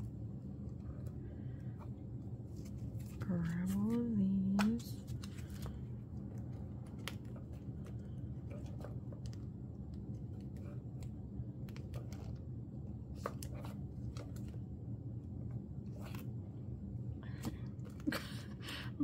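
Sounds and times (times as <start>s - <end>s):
steady low hum: 0.0s - 19.0s
card sleeves clicking and rustling: 2.4s - 14.6s.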